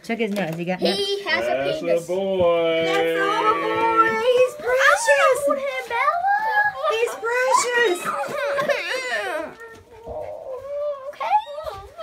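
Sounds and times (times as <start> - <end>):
puppy whining: 3.3 - 12.0.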